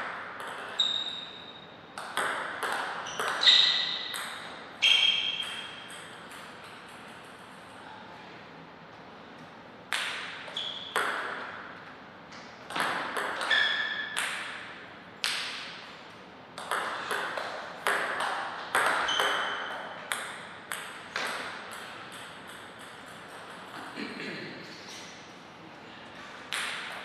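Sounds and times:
table tennis ball clicking: 16.6s - 23.9s.

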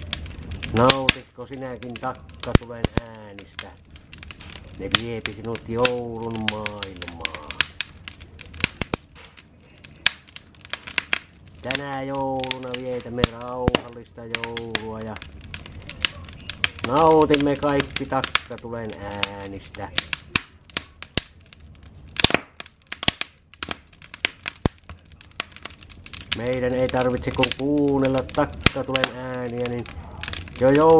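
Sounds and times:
wood fire crackling and popping: 0.0s - 30.9s.

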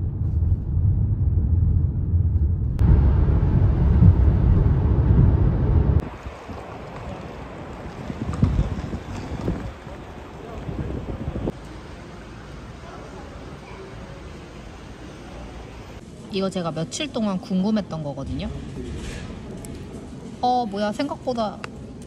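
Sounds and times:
car road and wind noise: 0.0s - 12.6s
quiet outdoor ambience: 0.0s - 22.0s.

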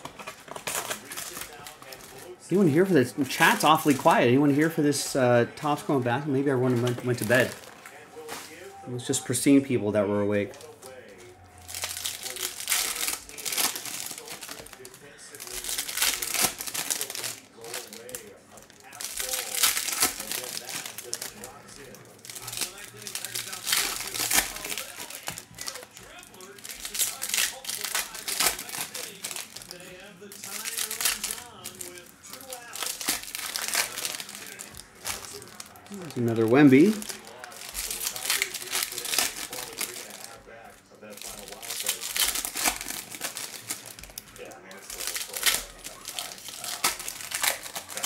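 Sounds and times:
cards handled: 0.0s - 4.3s, 10.5s - 40.4s
foil wrappers crinkling and tearing: 0.0s - 48.0s.

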